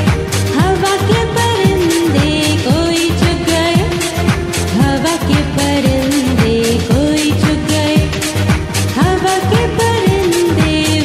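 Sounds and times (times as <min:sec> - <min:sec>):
person singing a melody: 0:00.0 - 0:08.4, 0:09.0 - 0:11.0
backing track with drum beat: 0:00.0 - 0:11.0.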